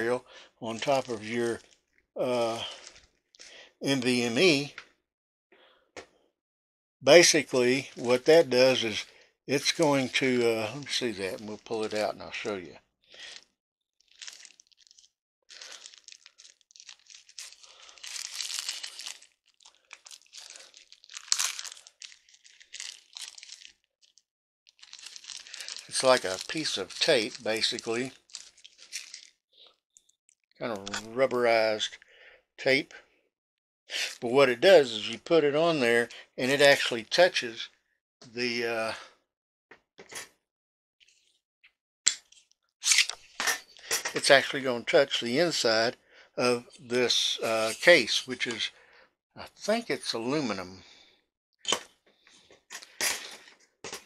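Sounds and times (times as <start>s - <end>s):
packaging crinkling: 0.7s - 1.8s, 14.0s - 29.4s.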